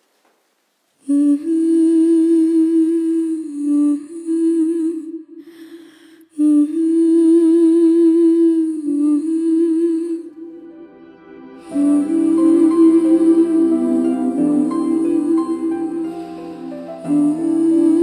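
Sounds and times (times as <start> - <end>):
person humming a melody: 1.0 - 5.5, 6.3 - 10.6, 11.6 - 18.0
breath: 5.4 - 6.4.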